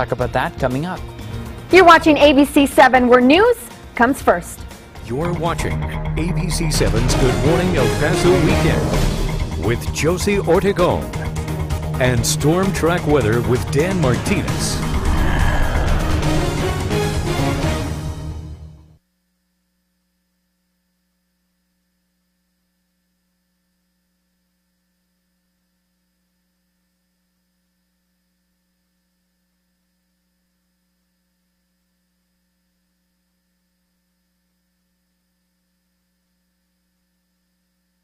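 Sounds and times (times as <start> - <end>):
faint electrical hum: 19.0 - 38.0.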